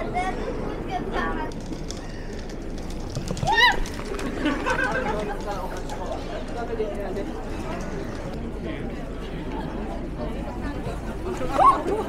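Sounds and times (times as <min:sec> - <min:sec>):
murmur of busy street: 0:00.0 - 0:12.0.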